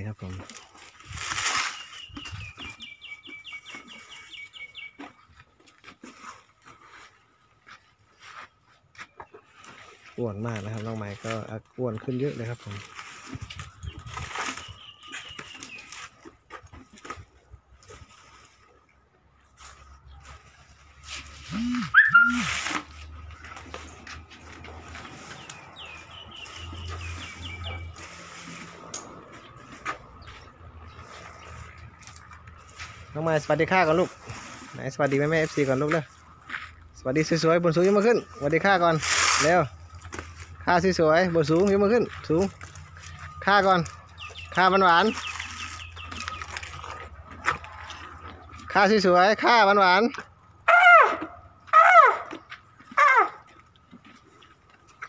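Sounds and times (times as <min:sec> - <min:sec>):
elephant eating banana leaves: 0:00.0 - 0:55.0
bird chirping: 0:01.6 - 0:05.5, 0:13.5 - 0:16.1, 0:21.4 - 0:23.6, 0:25.2 - 0:28.1, 0:41.4 - 0:47.2
small bird calling high notes: 0:21.5 - 0:22.8.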